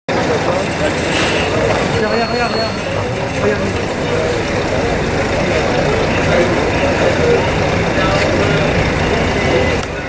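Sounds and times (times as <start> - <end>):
several voices talking: 0.1 - 10.0.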